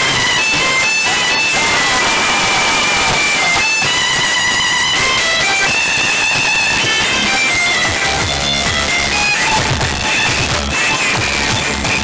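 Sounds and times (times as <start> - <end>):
heavy bass: 0.0 - 12.0
loud music with high melody: 0.0 - 12.0.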